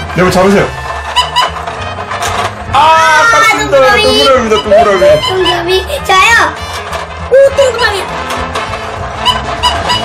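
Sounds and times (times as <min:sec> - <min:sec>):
simple electronic toy tune: 0:04.0 - 0:05.9, 0:09.2 - 0:10.0.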